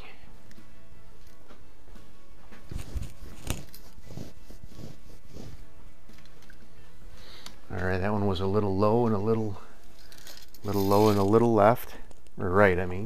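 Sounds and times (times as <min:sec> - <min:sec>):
footsteps in a small room: 0:00.4 - 0:06.5.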